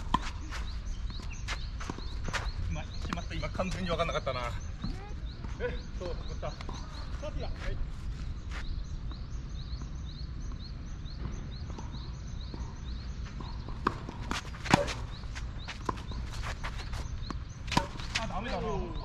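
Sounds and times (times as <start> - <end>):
rackets striking tennis ball: 13.5 - 18.7.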